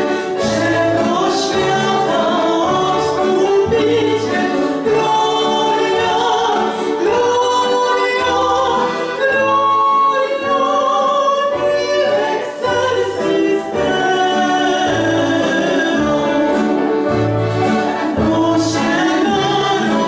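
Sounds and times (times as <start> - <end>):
women singing in harmony: 0.0 - 17.1, 17.8 - 20.0.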